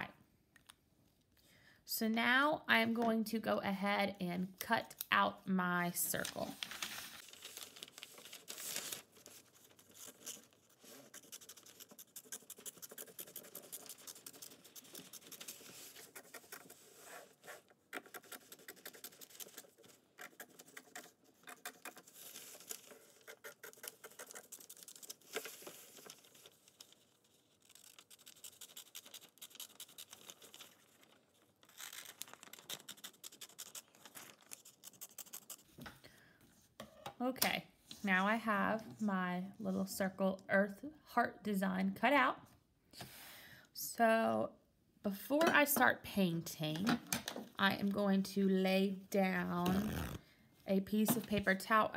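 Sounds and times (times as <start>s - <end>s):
paper crackling: 6.1s - 17.2s, 18.0s - 35.6s
scissors snipping paper: 7.6s - 16.8s, 17.9s - 26.4s, 27.6s - 35.6s.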